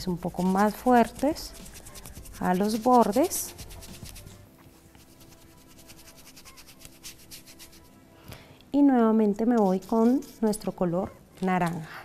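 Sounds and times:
quiet background music: 0.0s - 12.0s
brush scratching on wood: 0.2s - 7.9s, 9.6s - 10.6s.

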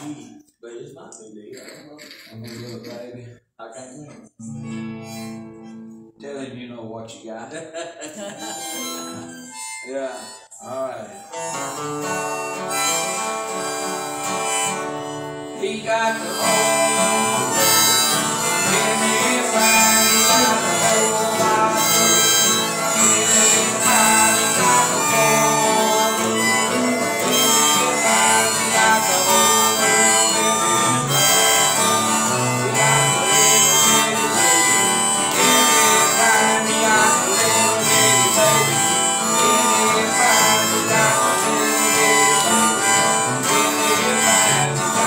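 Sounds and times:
acoustic guitars strumming: 4.1s - 6.3s, 8.0s - 45.0s
harmonica played by children: 4.4s - 5.8s, 8.0s - 45.0s.

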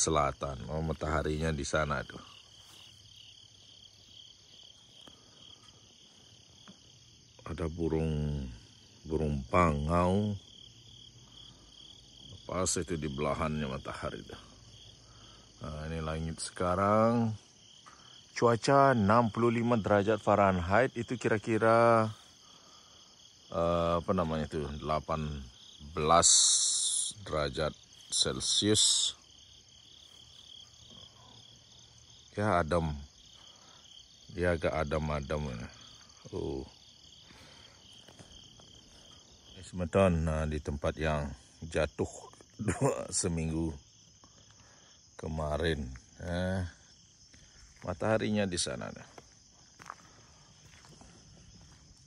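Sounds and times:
insect chorus trilling: 0.0s - 52.0s.

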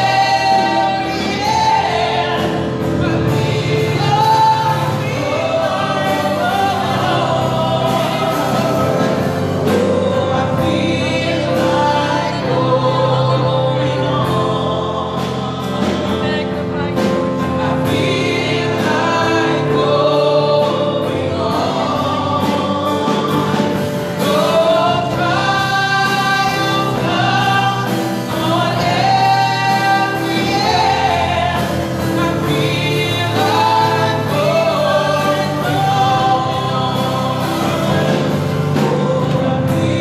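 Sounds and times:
held keyboard chords: 0.0s - 40.0s
women singing gospel song: 0.0s - 40.0s.

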